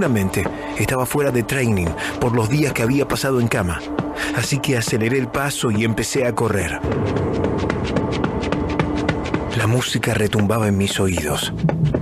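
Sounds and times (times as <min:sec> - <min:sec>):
running footsteps: 0:00.0 - 0:05.2, 0:06.8 - 0:12.0.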